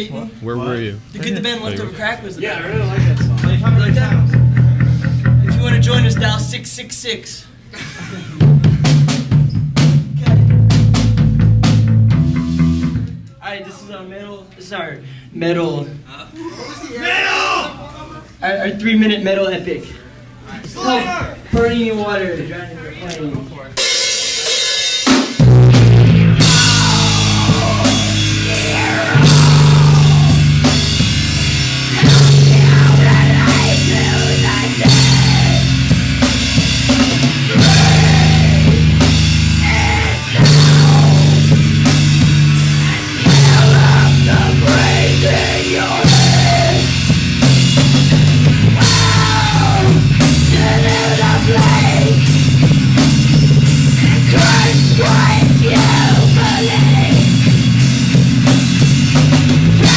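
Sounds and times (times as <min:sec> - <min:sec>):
bass guitar: 0:02.7 - 0:06.5, 0:08.4 - 0:13.3, 0:25.4 - 0:59.9
drum kit: 0:02.7 - 0:06.6, 0:08.2 - 0:13.3, 0:23.7 - 0:59.9
distorted electric guitars: 0:25.4 - 0:59.9.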